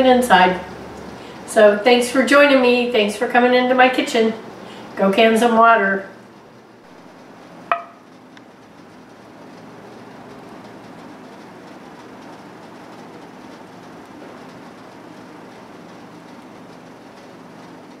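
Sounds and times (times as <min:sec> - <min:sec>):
low hum and hiss: 0:00.0 - 0:18.0.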